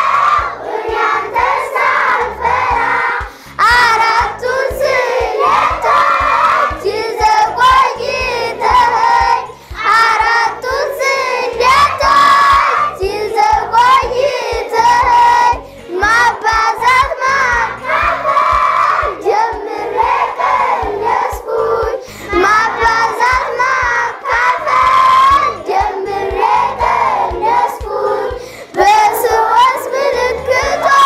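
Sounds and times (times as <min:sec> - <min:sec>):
children singing together: 0:00.0 - 0:31.0.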